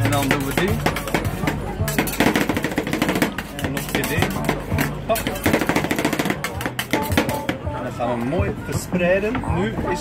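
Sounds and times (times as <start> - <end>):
metal spatulas tapping and scraping: 0.0 - 7.6.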